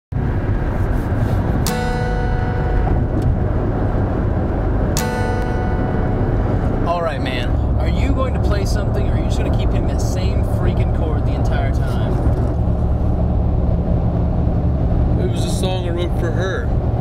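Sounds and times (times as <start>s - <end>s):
car road and engine rumble: 0.1s - 17.0s
guitar chord strummed: 1.6s - 3.4s, 4.8s - 6.8s.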